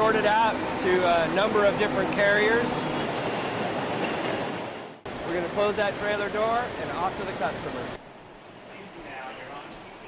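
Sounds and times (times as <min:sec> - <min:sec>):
conveyor machinery running: 0:00.0 - 0:04.4.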